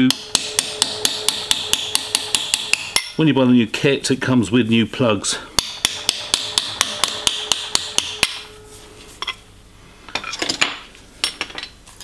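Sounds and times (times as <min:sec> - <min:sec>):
hammer tapping metal drift: 0:00.0 - 0:03.2, 0:05.6 - 0:09.4.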